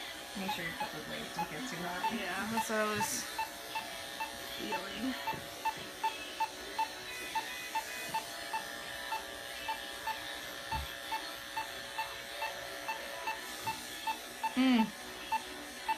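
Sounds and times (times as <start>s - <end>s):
electric clippers humming: 0.0s - 15.9s
monitor beeping: 0.4s - 14.6s.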